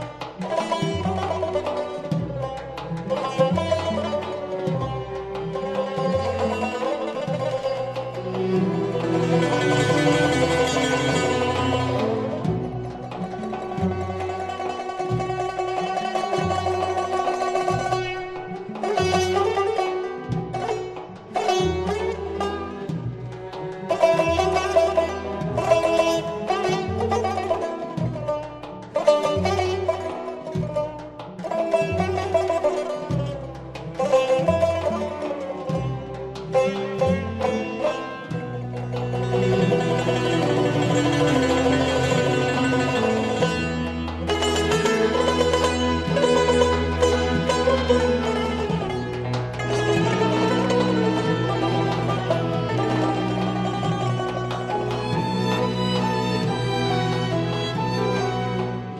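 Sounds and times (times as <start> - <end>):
instrumental accompaniment: 0.0 - 58.9
plucked lute melody: 0.0 - 58.9.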